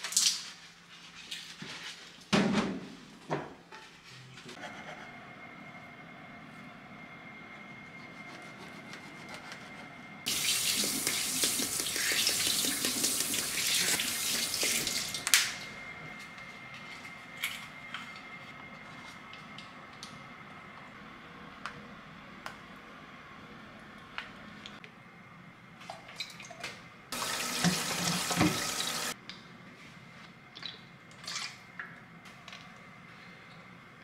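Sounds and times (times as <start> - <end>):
faucet water running into sink: 10.3 - 15.2, 27.2 - 29.2.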